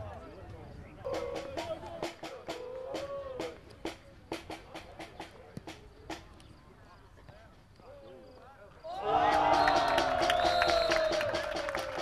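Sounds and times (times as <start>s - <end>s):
spectators clapping in rhythm: 9.1s - 12.0s.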